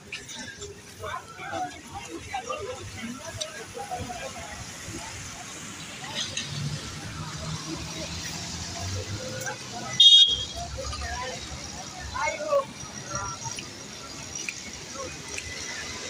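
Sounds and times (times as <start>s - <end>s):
vehicles passing: 0.0s - 16.0s
voices: 0.0s - 16.0s
high-pitched car horn toot: 10.0s - 10.6s.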